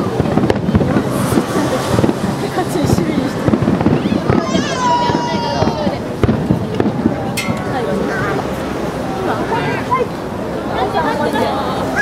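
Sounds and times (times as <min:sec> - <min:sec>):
fireworks bursting: 0:00.0 - 0:09.6
crowd chatter: 0:00.0 - 0:12.0.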